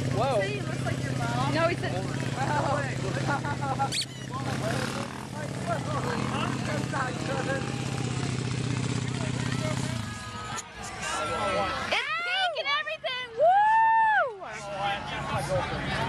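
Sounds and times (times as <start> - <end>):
minibike engine idling: 0.0 - 10.6
people talking: 0.1 - 13.4.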